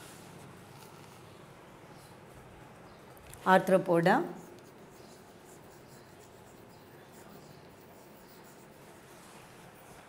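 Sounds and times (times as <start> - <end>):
chalk scratching on blackboard: 4.4 - 10.0.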